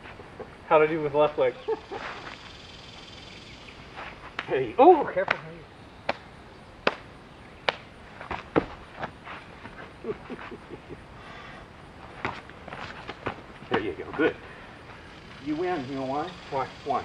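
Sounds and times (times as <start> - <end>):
person laughing: 1.5 - 2.4, 9.8 - 11.1
hands slapping bodies: 4.0 - 4.6, 5.2 - 10.6, 12.2 - 14.3.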